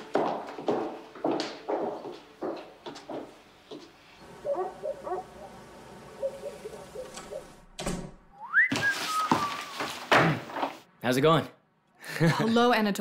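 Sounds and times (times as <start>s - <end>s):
person whistling: 8.3s - 9.8s.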